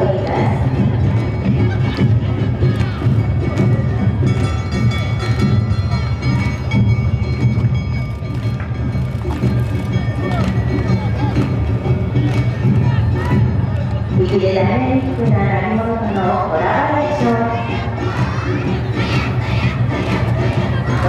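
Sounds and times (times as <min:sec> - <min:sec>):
drums and struck bells: 0:00.0 - 0:21.0.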